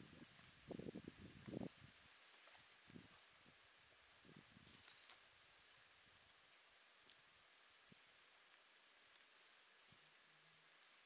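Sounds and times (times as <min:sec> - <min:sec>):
faint outdoor ambience: 0:00.0 - 0:11.0.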